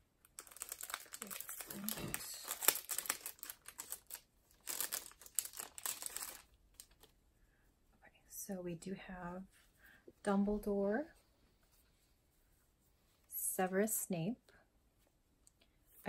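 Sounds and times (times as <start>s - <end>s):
packaging crinkling: 0.2s - 7.1s.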